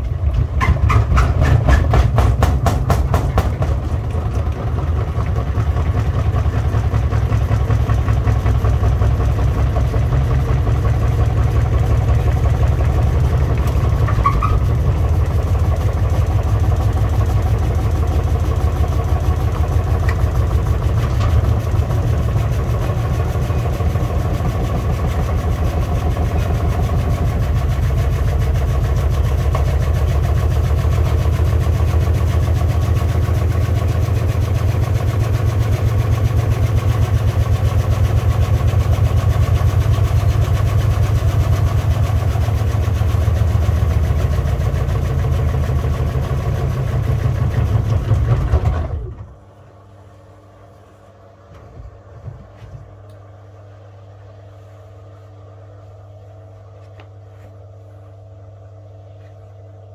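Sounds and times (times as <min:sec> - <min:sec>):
washing machine spinning drum: 0:00.0 - 0:55.9.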